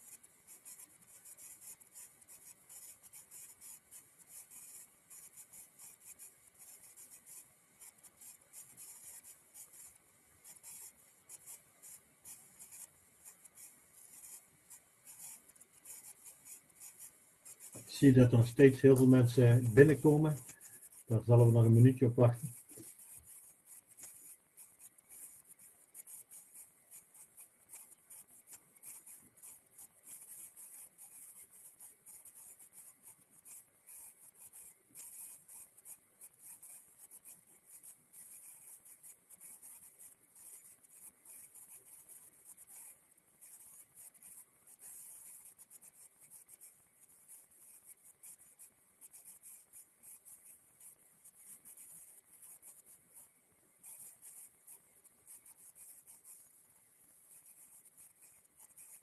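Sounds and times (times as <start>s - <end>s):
faint crackling high hiss: 0.0s - 59.0s.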